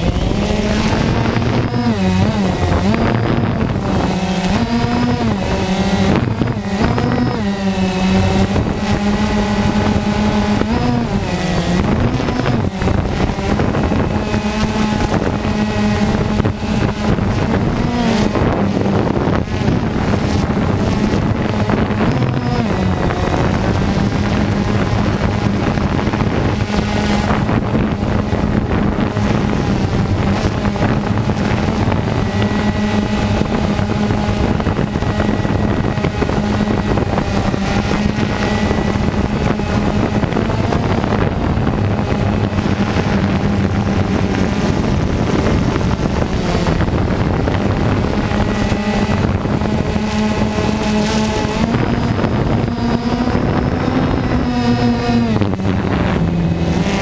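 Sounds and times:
drone motors whining hum: 0:00.0 - 0:57.0
wind rushing on microphone: 0:00.0 - 0:57.0.

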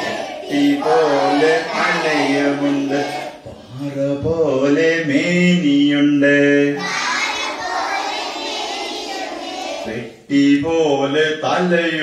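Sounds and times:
man singing unaccompanied: 0:00.0 - 0:06.8, 0:09.8 - 0:12.0.

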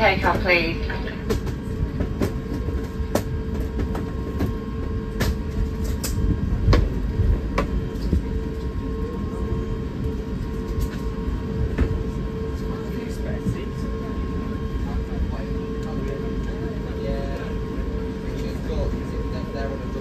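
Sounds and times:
aircraft cabin low rumble: 0:00.0 - 0:20.0
constant hum: 0:00.0 - 0:20.0.

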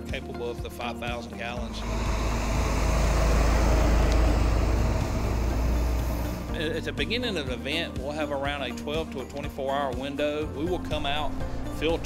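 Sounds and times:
truck driving past: 0:01.6 - 0:07.3, 0:10.7 - 0:12.0.

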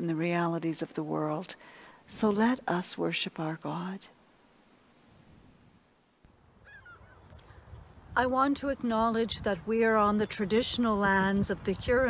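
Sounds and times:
distant bird calls: 0:06.6 - 0:07.5
low wind rumble on microphone: 0:06.6 - 0:12.0.

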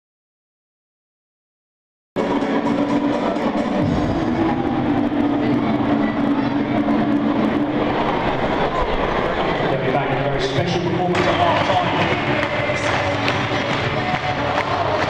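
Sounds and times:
stadium crowd din: 0:02.2 - 0:15.0
crowd chanting: 0:10.8 - 0:15.0.

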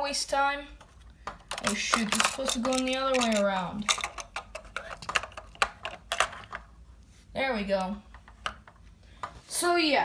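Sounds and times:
plastic bricks clicking: 0:01.3 - 0:06.6.

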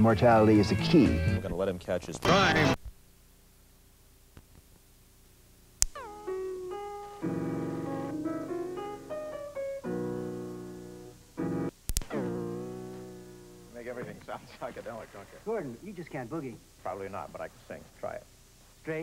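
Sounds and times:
sharp click: 0:05.8 - 0:06.0, 0:11.9 - 0:12.1
electric piano music: 0:06.0 - 0:13.9.

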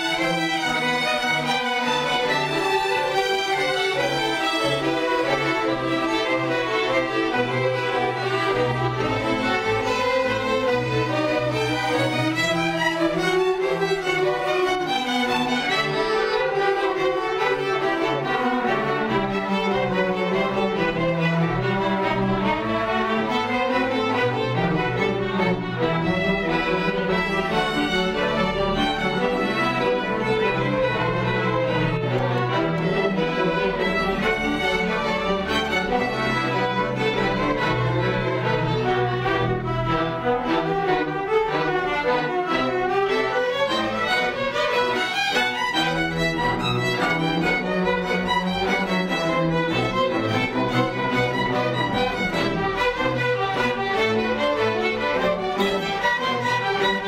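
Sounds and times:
string orchestra playing: 0:00.0 - 0:57.0.

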